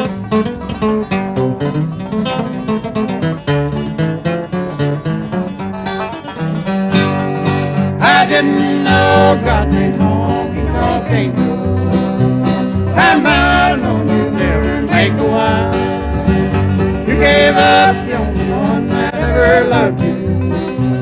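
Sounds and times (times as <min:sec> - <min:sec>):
acoustic guitar picking: 0:00.0 - 0:21.0
plucked upright bass: 0:00.0 - 0:21.0
person singing: 0:08.0 - 0:11.7, 0:12.9 - 0:16.0, 0:17.1 - 0:20.2.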